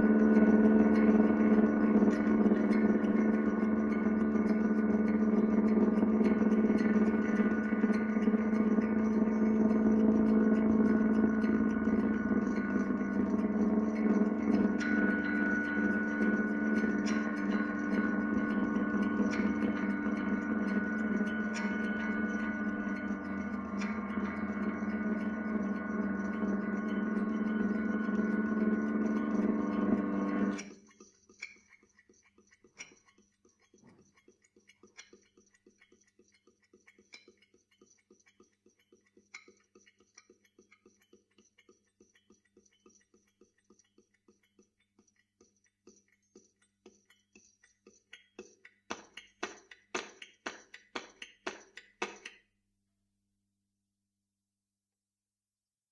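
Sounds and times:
electric guitar drone: 0:00.0 - 0:30.7.

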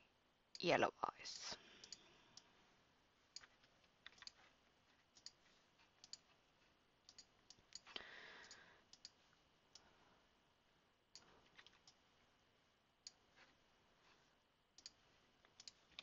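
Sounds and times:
computer mouse clicks: 0:01.8 - 0:02.5, 0:03.3 - 0:04.4, 0:05.1 - 0:05.4, 0:06.0 - 0:06.4, 0:07.1 - 0:09.9, 0:14.8 - 0:16.0.

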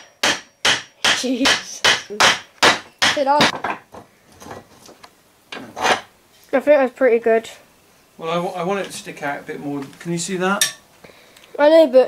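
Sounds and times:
wooden handle scraping in vise: 0:05.6 - 0:06.1.

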